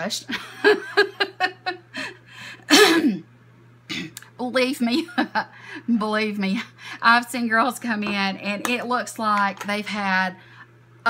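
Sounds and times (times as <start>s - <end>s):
woman coughing and laughing: 2.7s - 3.3s.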